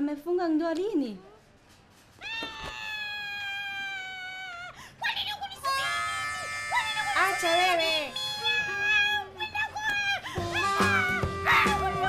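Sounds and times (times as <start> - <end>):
woman wailing: 2.2 - 4.8, 5.7 - 9.4, 10.5 - 12.0.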